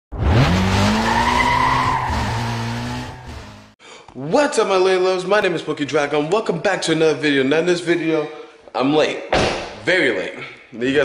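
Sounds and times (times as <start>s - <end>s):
car engine revving: 0.1s - 3.8s
tyres squealing: 0.9s - 3.2s.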